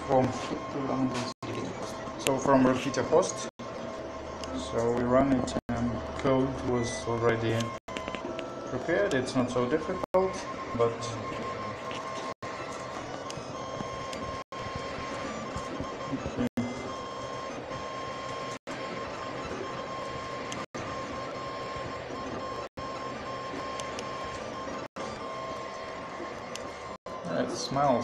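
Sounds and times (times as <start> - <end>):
laser engraver motors whirring: 0.0 - 28.0.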